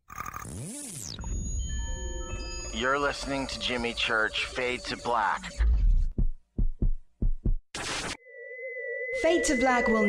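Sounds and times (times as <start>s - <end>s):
deep heartbeat thumps: 5.6s - 7.7s.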